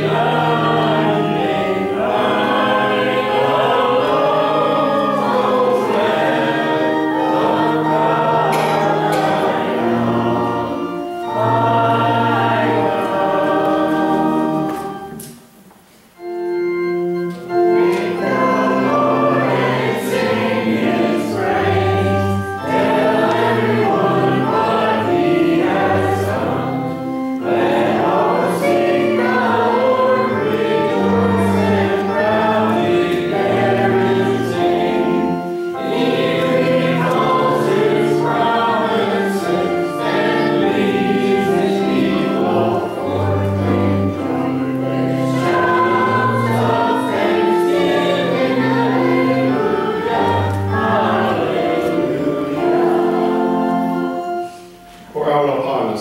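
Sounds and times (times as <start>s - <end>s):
group singing a hymn: 0.0s - 15.6s, 16.2s - 56.0s
keyboard accompaniment: 0.0s - 56.0s.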